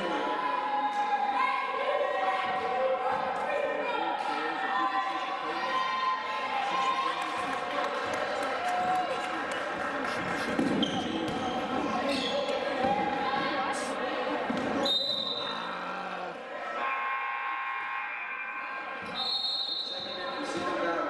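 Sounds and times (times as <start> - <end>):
players' voices echoing: 0.0 - 21.0
sneaker squeaks: 10.6 - 12.8, 14.5 - 15.5
referee's whistle blasts: 19.0 - 20.5.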